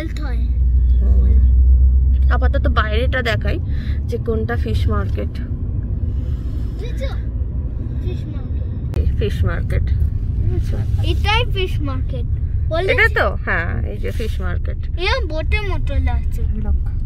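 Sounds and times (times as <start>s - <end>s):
car cabin road and engine noise: 0.0s - 17.0s.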